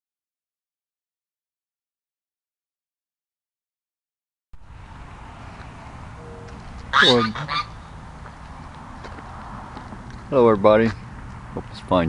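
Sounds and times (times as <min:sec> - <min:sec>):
outdoor background noise: 0:04.6 - 0:12.0
geese honking: 0:06.0 - 0:08.1.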